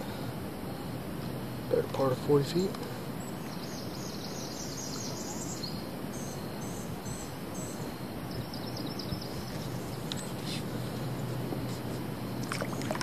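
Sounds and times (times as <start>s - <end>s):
steady river noise: 0.0s - 13.0s.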